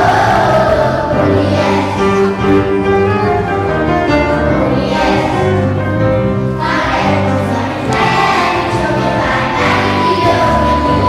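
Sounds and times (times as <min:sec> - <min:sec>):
children's choir singing: 0:00.0 - 0:11.0
held low accompaniment notes: 0:00.0 - 0:11.0.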